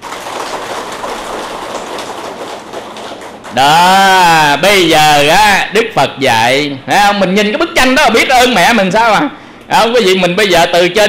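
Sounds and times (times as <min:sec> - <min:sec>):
audience applauding: 0:00.0 - 0:04.6.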